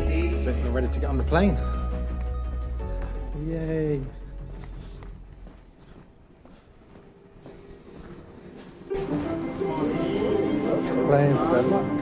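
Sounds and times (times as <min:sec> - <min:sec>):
faint footsteps: 0:00.0 - 0:11.6.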